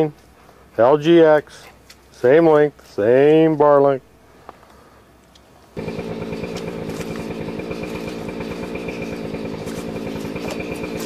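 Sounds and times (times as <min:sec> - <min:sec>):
chainsaw engine idling: 0:05.8 - 0:11.0.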